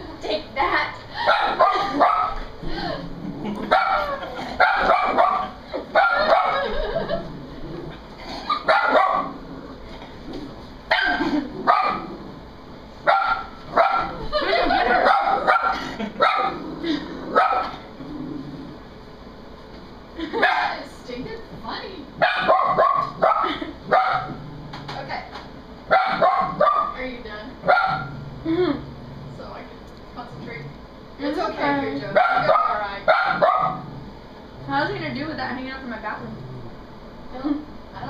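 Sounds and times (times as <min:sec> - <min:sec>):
small dog barking: 0:01.3 - 0:02.4, 0:03.7 - 0:06.7, 0:08.5 - 0:09.4, 0:10.9 - 0:12.1, 0:13.0 - 0:16.6, 0:17.4 - 0:17.8, 0:20.4 - 0:20.8, 0:22.2 - 0:24.4, 0:25.9 - 0:27.0, 0:27.6 - 0:28.1, 0:32.1 - 0:33.9.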